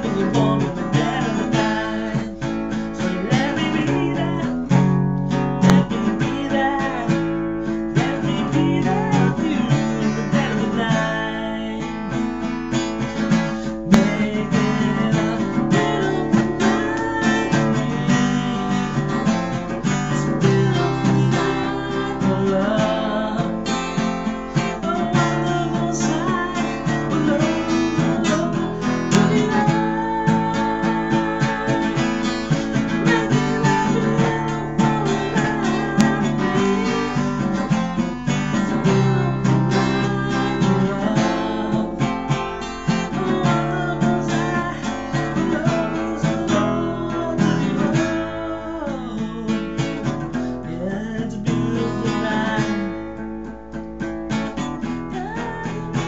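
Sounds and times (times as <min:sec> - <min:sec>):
man singing: 0:00.0 - 0:53.4, 0:54.5 - 0:56.0
acoustic guitar strumming: 0:00.0 - 0:56.0.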